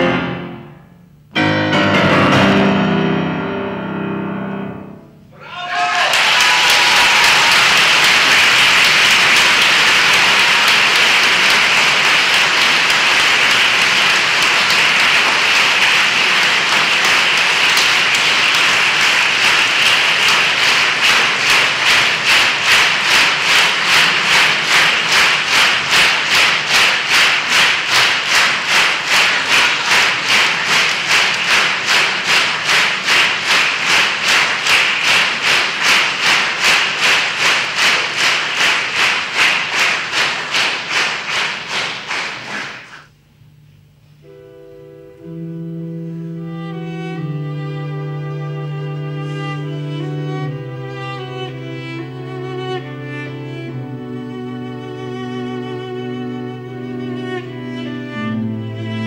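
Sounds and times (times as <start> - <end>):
audience applauding: 5.4 - 43.1
rhythmic clapping in unison: 5.7 - 43.2.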